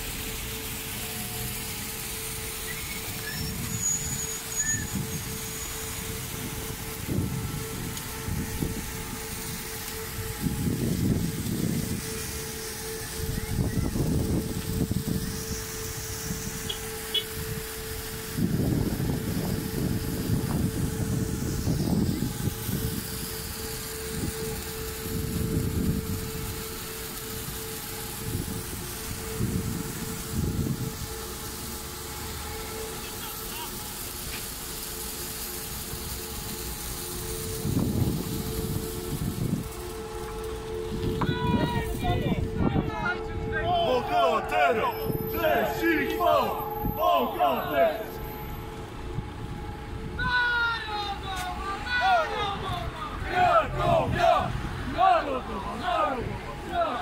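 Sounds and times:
steady siren tone: 0.0s - 57.0s.

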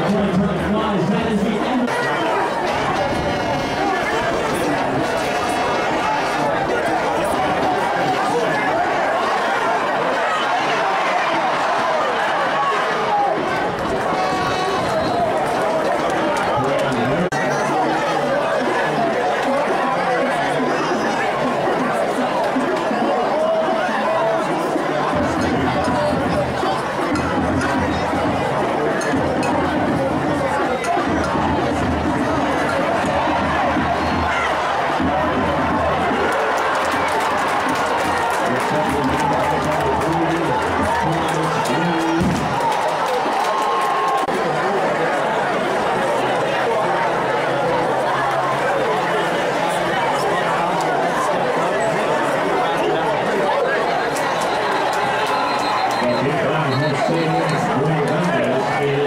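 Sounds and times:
crowd chatter in stadium: 0.0s - 59.0s
music: 25.1s - 41.4s.

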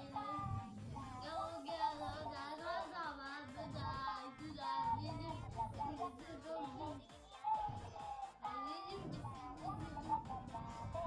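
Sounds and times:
backing music: 0.0s - 11.0s
high child-like singing voice: 0.0s - 11.0s.

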